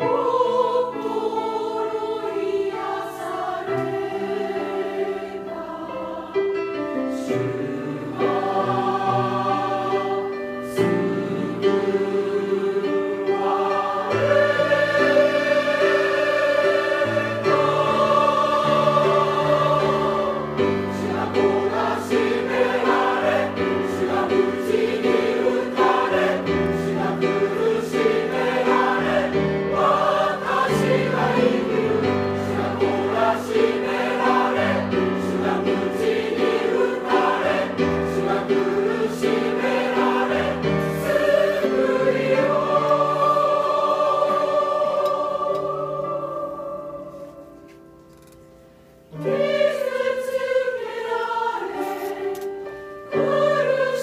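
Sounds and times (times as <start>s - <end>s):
choir singing a hymn: 0.0s - 48.3s, 49.0s - 54.0s.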